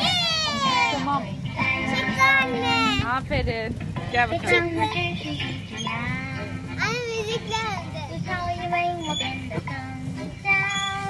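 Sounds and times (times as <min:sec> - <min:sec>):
children's song from speaker: 0:00.0 - 0:03.3, 0:04.0 - 0:11.0.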